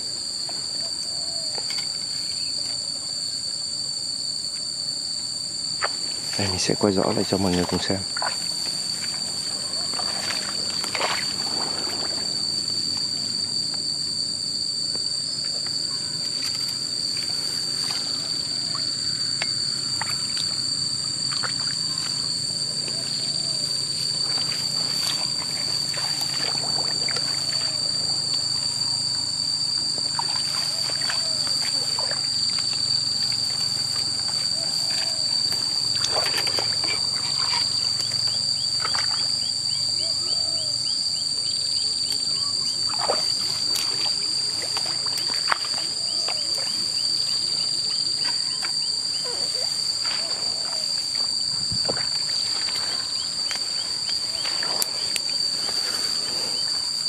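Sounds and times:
high-pitched ringing drone: 0.0 - 57.0
short insect chirps: 0.0 - 57.0
wading in shallow muddy water: 4.8 - 57.0
grass rustling: 7.6 - 13.2, 19.8 - 28.9, 49.8 - 57.0
shallow water sloshing: 7.6 - 13.2, 19.8 - 28.8, 30.0 - 39.4.

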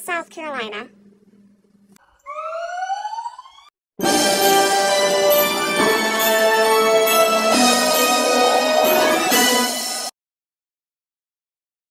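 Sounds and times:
gibbon whoop rising in pitch: 2.1 - 3.7.

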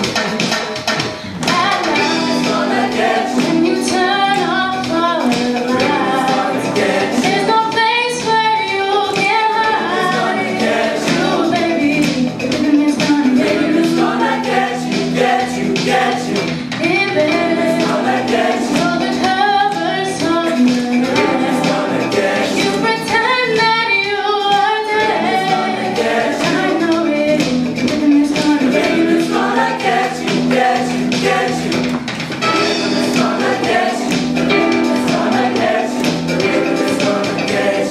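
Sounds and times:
choir singing in harmony: 1.4 - 4.5, 5.2 - 7.8, 9.6 - 12.2, 13.2 - 23.5, 24.8 - 37.9.

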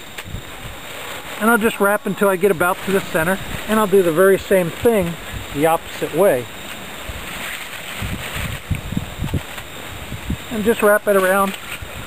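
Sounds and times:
rustling over dry leaves: 0.0 - 12.0.

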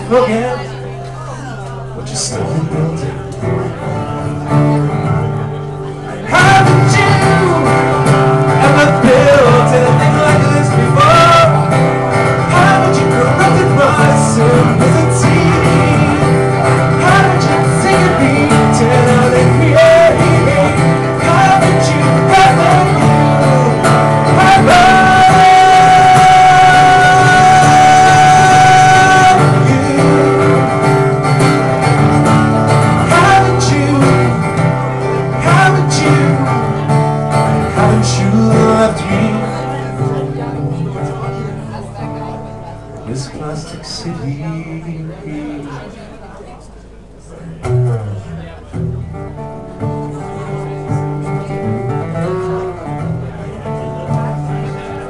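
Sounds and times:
man singing: 0.0 - 1.0, 2.0 - 3.4, 6.1 - 41.5, 43.0 - 46.0
acoustic guitar strumming: 0.0 - 46.0, 47.2 - 55.0.

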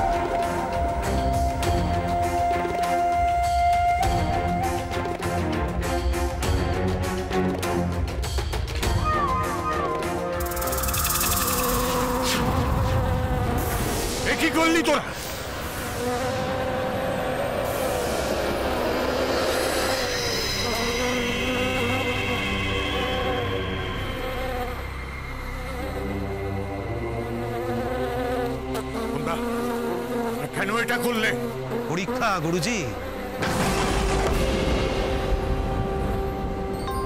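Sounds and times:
bees buzzing: 9.2 - 34.0.

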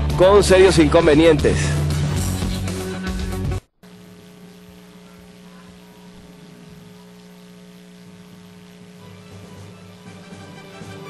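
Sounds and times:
mains hum: 0.0 - 11.0.

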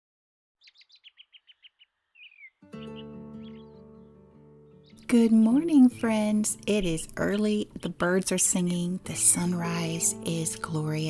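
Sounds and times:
songbirds chirping: 0.6 - 11.0
soft music with sustained chords: 2.6 - 11.0.

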